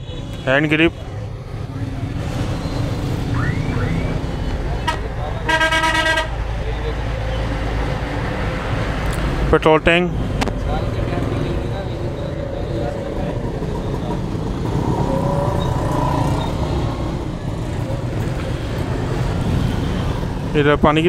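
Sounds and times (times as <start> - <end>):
passing motorcycles and vehicles: 0.0 - 21.0.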